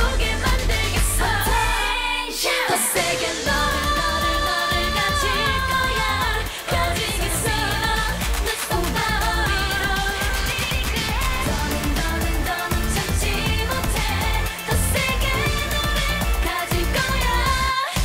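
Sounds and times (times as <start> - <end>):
heavy bass beat: 0.0 - 1.9, 3.5 - 17.7
female vocalists singing: 0.0 - 18.0.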